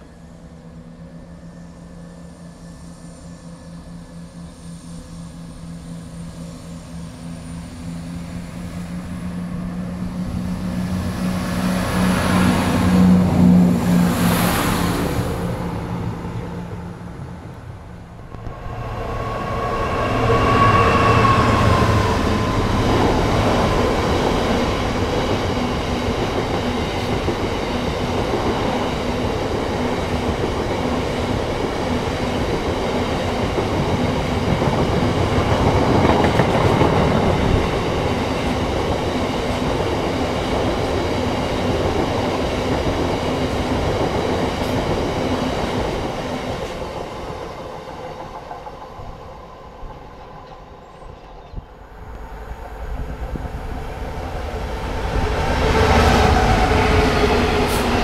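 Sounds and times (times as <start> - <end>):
diesel locomotive passing: 0.0 - 58.0
train wagons rumbling and clattering: 8.8 - 58.0.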